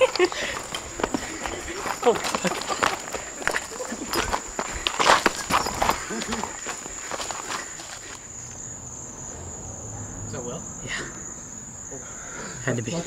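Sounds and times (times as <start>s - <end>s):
hurried footsteps through grass: 0.0s - 8.2s
crickets trilling: 0.0s - 13.0s.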